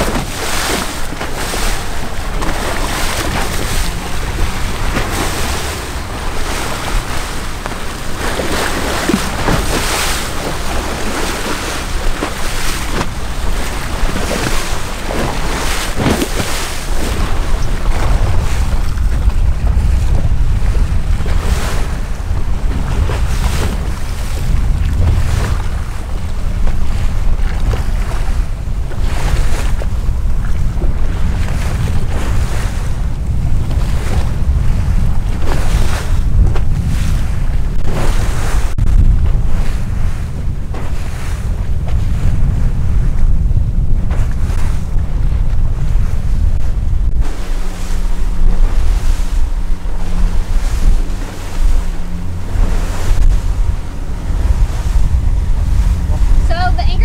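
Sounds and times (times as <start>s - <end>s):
outboard motor drone: 0.0s - 57.0s
rushing waves: 0.0s - 57.0s
wind buffeting microphone: 0.0s - 57.0s.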